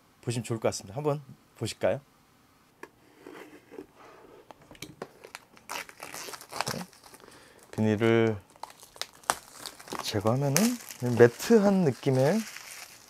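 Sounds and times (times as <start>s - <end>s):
plastic film crinkling: 5.0s - 13.0s.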